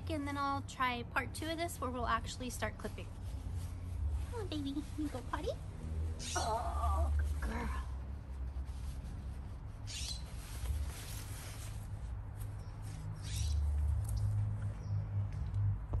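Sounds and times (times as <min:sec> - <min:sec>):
steady low rumble: 0:00.0 - 0:09.9.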